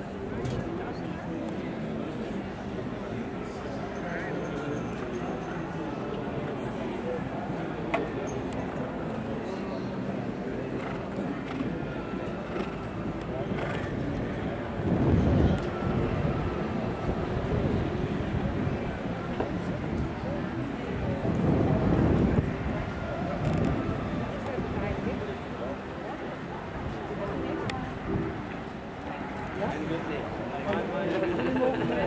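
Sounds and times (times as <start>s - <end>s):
outdoor ambience: 0.0s - 32.0s.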